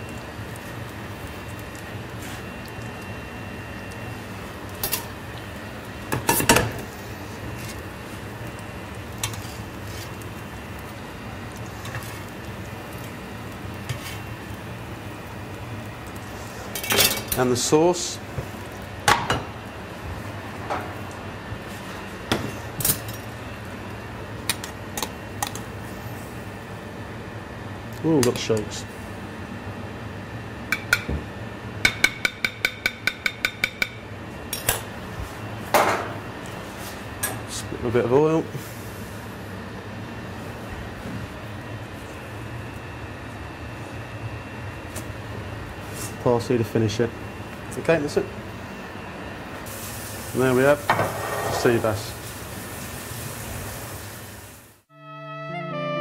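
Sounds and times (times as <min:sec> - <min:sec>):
low kitchen hum: 0:00.0 - 0:56.0
rustling or scraping noises: 0:13.9 - 0:14.3.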